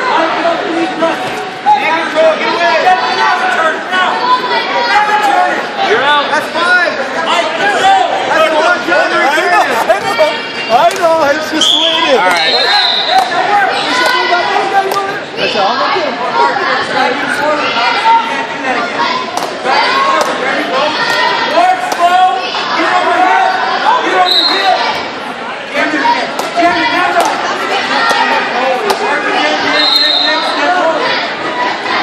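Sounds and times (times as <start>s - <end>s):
crowd chattering indoors: 0.0s - 32.0s
overlapping indistinct voices: 0.0s - 32.0s.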